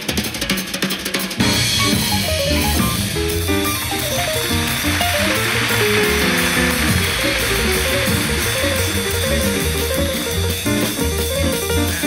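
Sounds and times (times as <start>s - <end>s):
drums with ringing cymbals: 0.0s - 12.0s
jazz piano: 1.3s - 12.0s
double bass: 1.4s - 12.0s.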